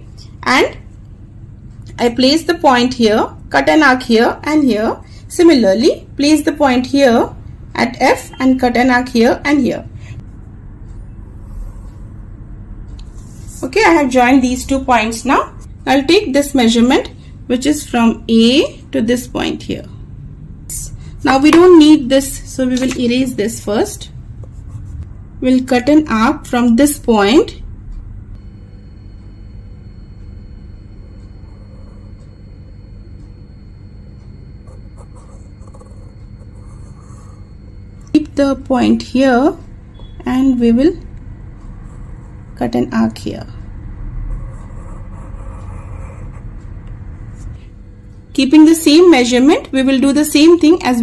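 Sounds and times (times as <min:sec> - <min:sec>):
low background hum: 0:00.0 - 0:51.0
low background rumble: 0:00.0 - 0:51.0
pencil scratching on paper: 0:24.4 - 0:25.0, 0:31.3 - 0:32.6, 0:34.6 - 0:37.7, 0:41.7 - 0:42.7, 0:44.3 - 0:46.6.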